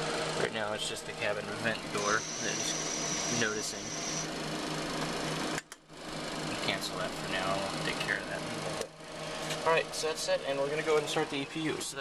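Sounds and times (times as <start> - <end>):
electrical whir and hum: 0.0 - 12.0
thin high tone: 1.7 - 4.3.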